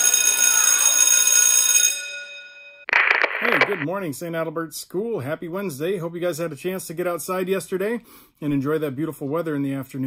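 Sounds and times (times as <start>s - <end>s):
sudden loud sound: 2.9s - 3.9s.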